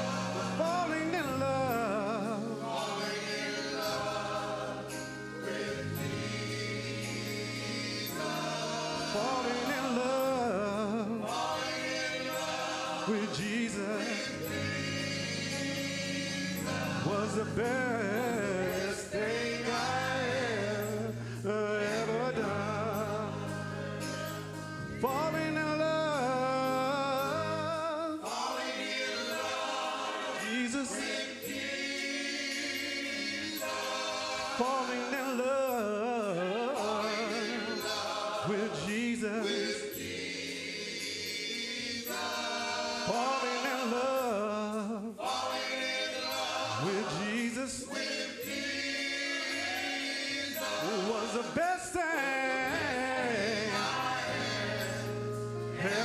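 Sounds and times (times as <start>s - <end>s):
person singing: 0.0s - 28.7s, 34.4s - 40.2s, 46.3s - 48.6s, 50.6s - 56.0s
choir and keyboard chord: 0.0s - 56.0s.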